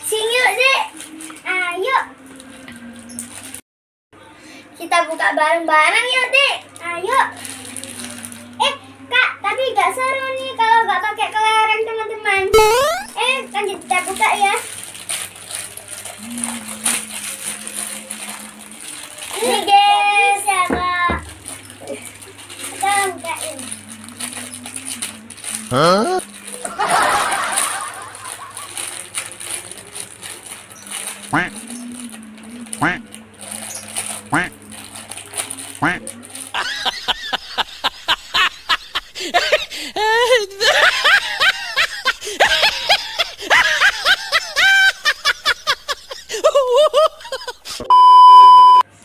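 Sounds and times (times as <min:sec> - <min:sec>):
plastic bags crinkling: 0:00.1 - 0:03.6, 0:06.8 - 0:08.7, 0:13.1 - 0:47.8
rapid laughing: 0:35.8 - 0:47.8.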